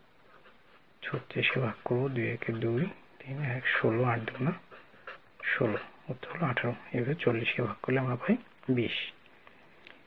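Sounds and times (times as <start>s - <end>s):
person talking: 1.0s - 4.7s, 5.4s - 9.2s.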